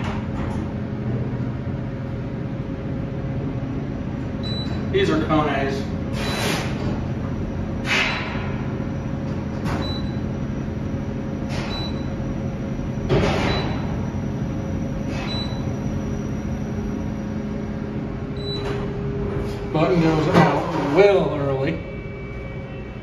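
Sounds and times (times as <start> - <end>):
elevator car humming: 0.0 - 23.0.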